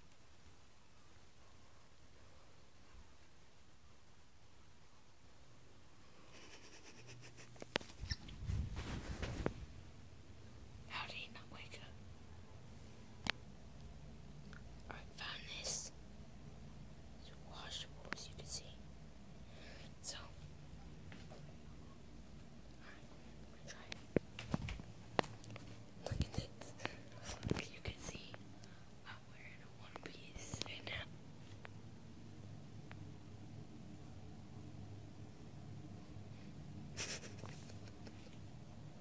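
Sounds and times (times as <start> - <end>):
rustling: 6.4 - 9.8
person whispering: 10.9 - 12.0, 14.8 - 16.0, 17.2 - 18.8, 19.9 - 20.4, 22.7 - 24.1, 26.0 - 28.4, 29.0 - 31.1.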